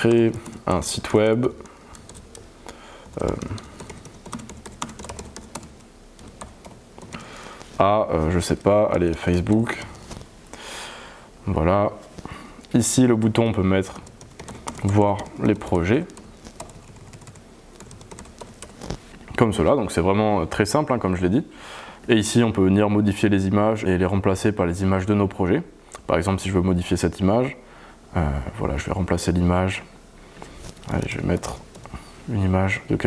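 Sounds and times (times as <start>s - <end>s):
typing on computer keyboard: 1.4s - 7.3s, 13.2s - 18.9s.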